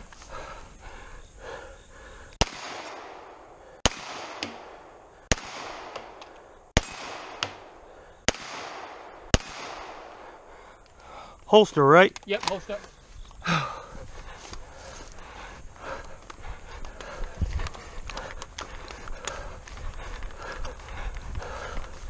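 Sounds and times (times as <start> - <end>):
pistol shots with echo: 2.4 - 6.2, 6.8 - 10.4.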